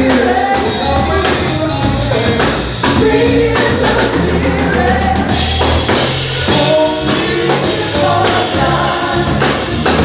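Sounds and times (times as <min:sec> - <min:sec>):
drums: 0:00.0 - 0:10.0
piano: 0:00.0 - 0:10.0
voices singing together: 0:00.0 - 0:10.0.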